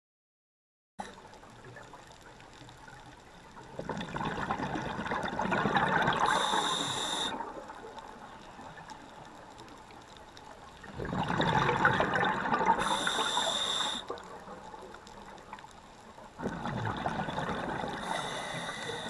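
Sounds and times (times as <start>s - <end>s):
exhaled bubbles underwater: 1.1s - 19.0s
regulator hiss: 6.3s - 7.5s, 12.8s - 14.2s, 18.0s - 19.0s.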